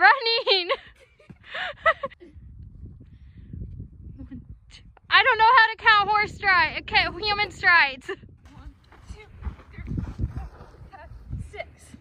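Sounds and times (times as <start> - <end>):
feet running on sand: 8.8 - 11.2.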